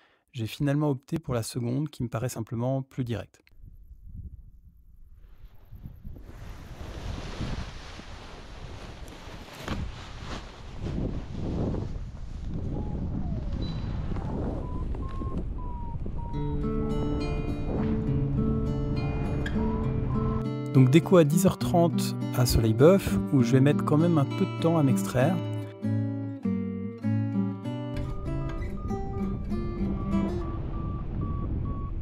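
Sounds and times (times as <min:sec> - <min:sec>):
wind rushing over microphone: 0:03.6 - 0:20.5, 0:28.2 - 0:32.0
guitar music: 0:16.3 - 0:32.0.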